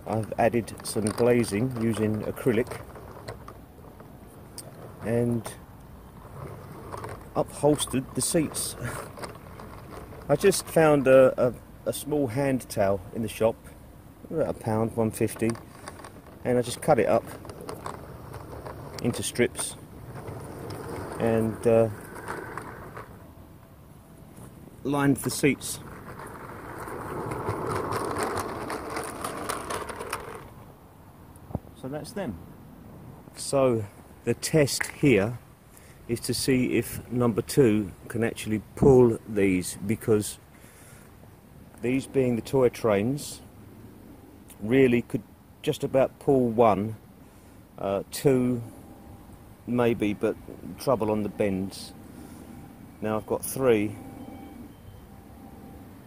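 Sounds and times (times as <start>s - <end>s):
small wheels rumbling on rails: 0.0s - 32.1s, 33.3s - 56.0s.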